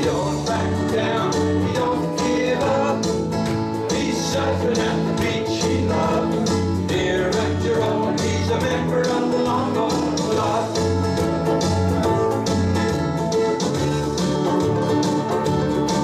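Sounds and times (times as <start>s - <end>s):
bass line: 0.0s - 16.0s
ukulele ensemble strumming chords: 0.0s - 16.0s.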